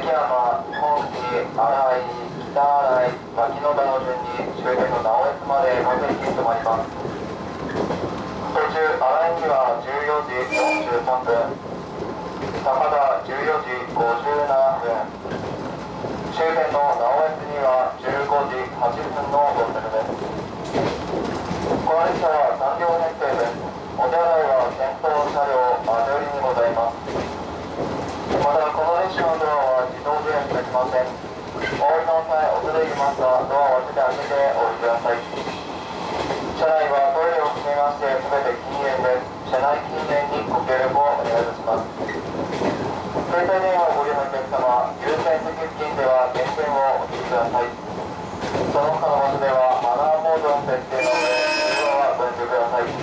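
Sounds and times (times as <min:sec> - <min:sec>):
electric train rumbling: 0:00.1 - 0:53.0
announcement over speaker: 0:08.5 - 0:11.6, 0:16.3 - 0:20.2, 0:21.8 - 0:27.0, 0:43.3 - 0:47.9, 0:48.7 - 0:53.0
person speaking: 0:43.3 - 0:47.9, 0:48.6 - 0:53.0.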